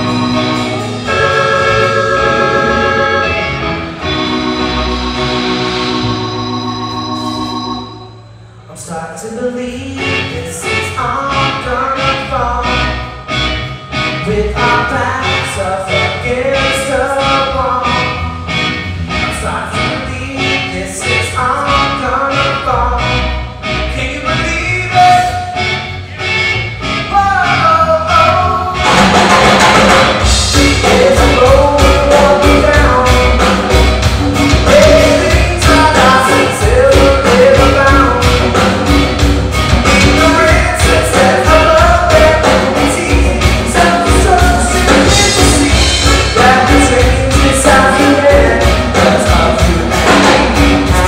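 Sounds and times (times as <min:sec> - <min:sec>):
regular drum beat: 0:00.0 - 0:03.5, 0:28.8 - 0:51.0
live band playing: 0:00.0 - 0:08.7, 0:09.5 - 0:51.0
sung vocals: 0:08.7 - 0:13.2, 0:14.0 - 0:18.4, 0:19.2 - 0:26.3, 0:27.0 - 0:28.9, 0:30.2 - 0:51.0.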